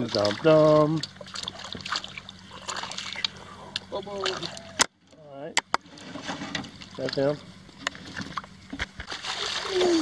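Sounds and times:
water sloshing against boat: 0.0 - 10.0.

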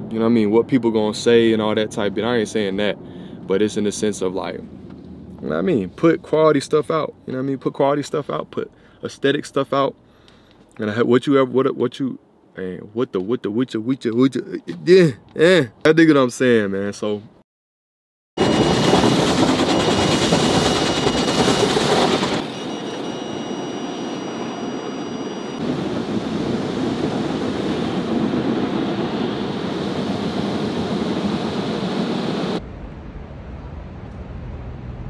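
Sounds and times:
low hum: 18.4 - 35.0.

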